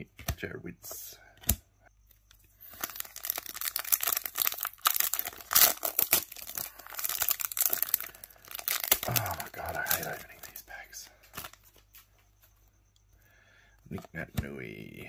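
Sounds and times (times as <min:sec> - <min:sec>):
plastic wrapper crinkling and tearing: 0:02.6 - 0:10.6.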